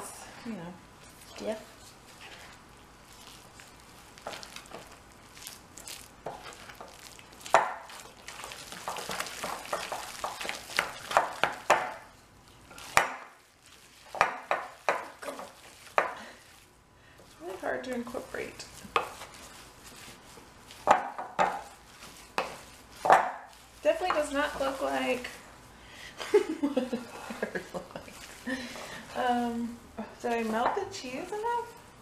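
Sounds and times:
spoon stirring sticky dough: 0.0s - 25.6s, 26.3s - 31.8s.

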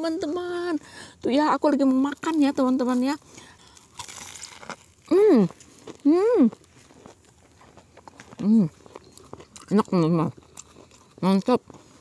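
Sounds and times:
crunching bites of fried food: 3.0s - 12.0s.

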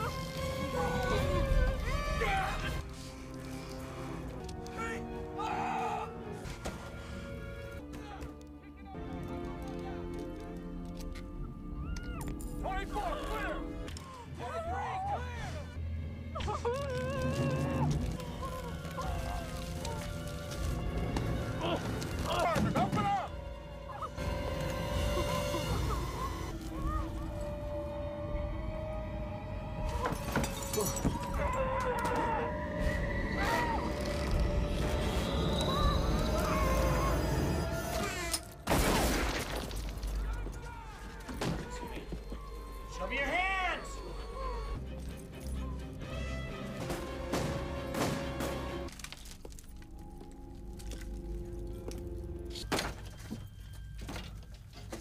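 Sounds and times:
tense film score: 0.0s - 55.0s.

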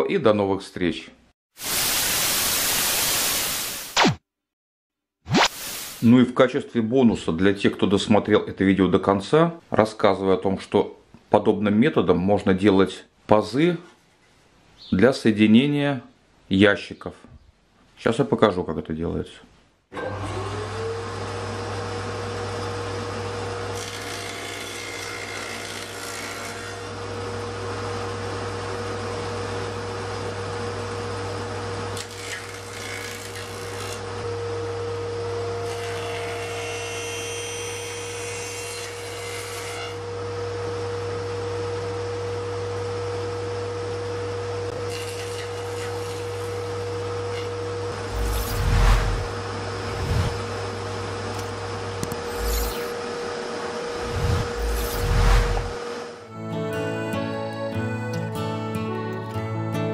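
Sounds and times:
saw cutting plywood: 23.7s - 27.0s, 32.0s - 34.1s, 35.5s - 40.0s, 44.7s - 50.4s, 52.1s - 53.0s, 54.0s - 55.8s
table saw whining: 32.0s - 40.0s, 44.8s - 50.4s, 52.0s - 53.0s, 53.9s - 55.8s.

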